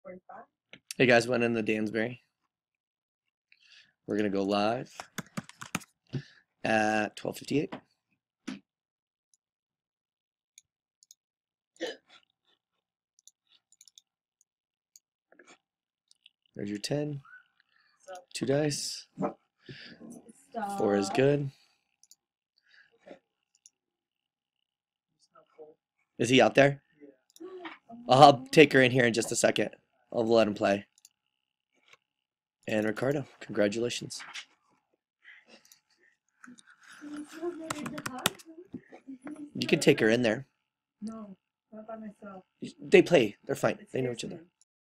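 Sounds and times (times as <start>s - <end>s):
computer mouse clicks: 5.0s - 5.9s, 37.6s - 38.5s
keyboard keys clicking: 5.0s - 5.9s.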